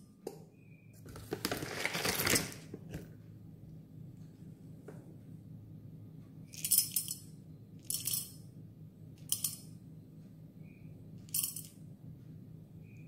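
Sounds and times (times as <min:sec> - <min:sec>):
coffee beans rattling into metal cup: 0:01.1 - 0:02.7.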